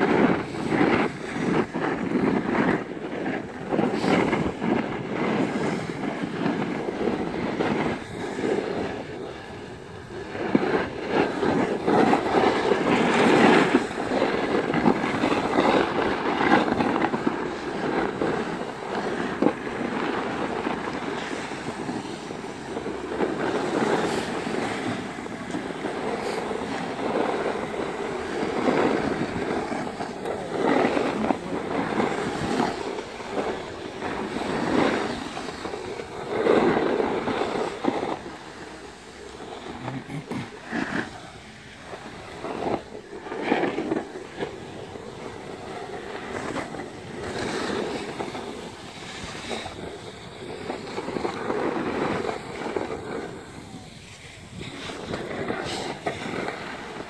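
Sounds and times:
skis scraping on packed snow: 0.0s - 57.0s
wind buffeting microphone: 0.0s - 57.0s.

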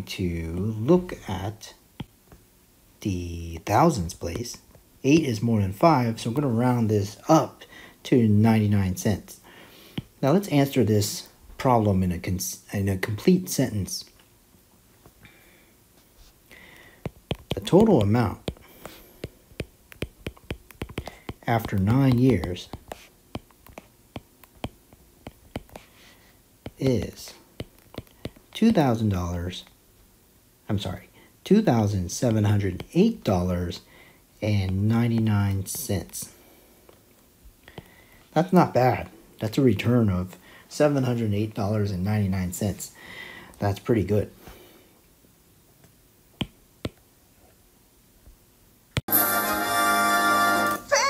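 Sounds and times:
stylus tapping on a tablet: 2.0s - 2.2s, 16.8s - 25.9s, 26.6s - 28.5s, 46.4s - 47.0s.

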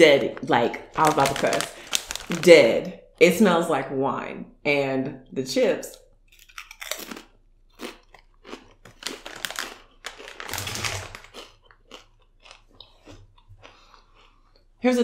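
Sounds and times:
potato chip crunching: 0.0s - 2.7s, 6.3s - 14.6s.

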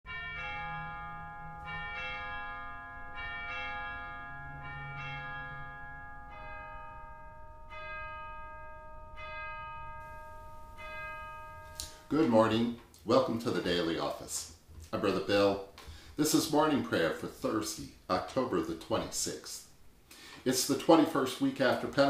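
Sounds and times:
bells ringing: 0.1s - 14.1s.

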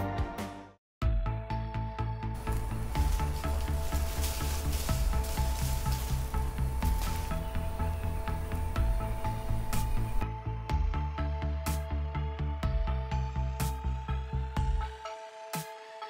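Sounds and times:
music with heavy bass: 2.4s - 15.1s.

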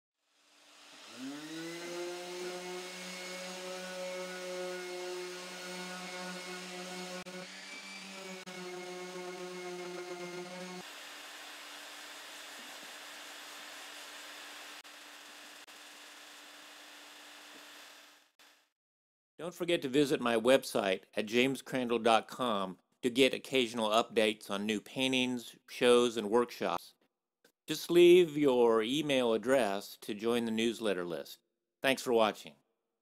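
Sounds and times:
orbit sander whining: 0.7s - 18.0s.

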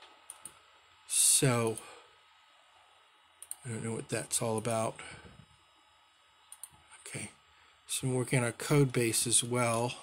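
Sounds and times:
computer mouse clicks: 0.3s - 0.6s, 3.4s - 3.6s, 6.5s - 6.8s.

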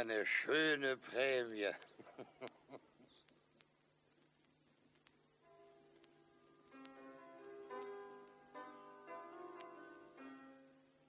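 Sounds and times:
faint clicks: 1.7s - 8.5s.

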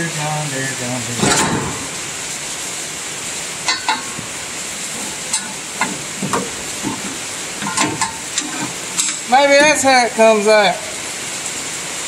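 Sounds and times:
steady hiss: 0.0s - 12.0s
metal clinks and knocks: 3.6s - 9.8s.

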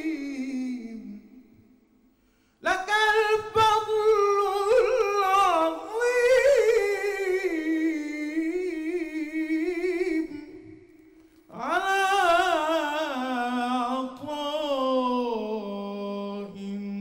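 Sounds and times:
man chanting unaccompanied: 0.0s - 1.4s, 2.6s - 10.8s, 11.5s - 17.0s.

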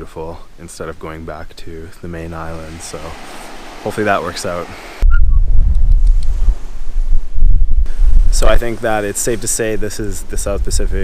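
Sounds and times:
wind buffeting microphone: 2.7s - 11.0s.

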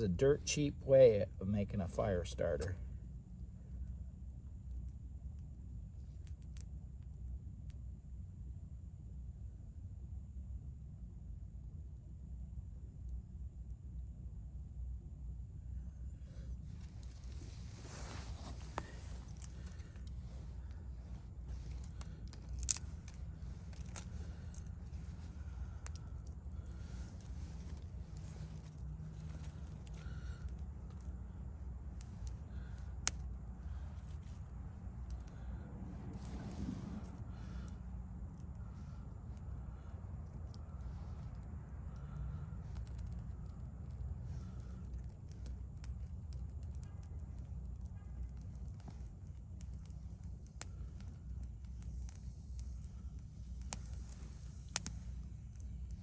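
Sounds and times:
low outdoor rumble: 0.0s - 56.0s
sharp clicks: 31.9s - 35.5s, 37.1s - 56.0s.

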